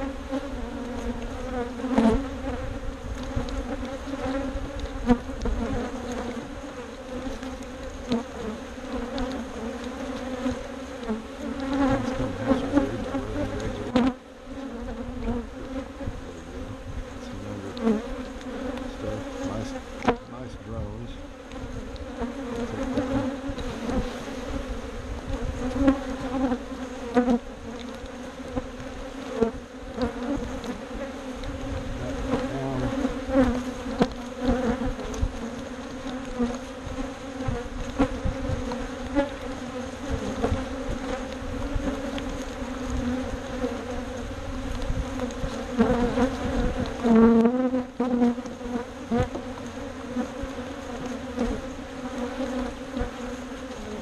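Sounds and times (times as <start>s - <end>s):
honeybees buzzing: 0.0s - 54.0s.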